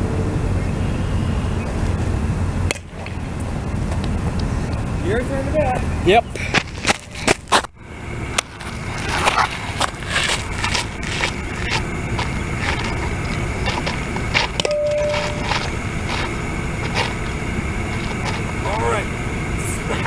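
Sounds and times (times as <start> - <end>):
outdoor rumble and hiss: 0.0 - 20.0
brief steady tone: 14.6 - 16.3.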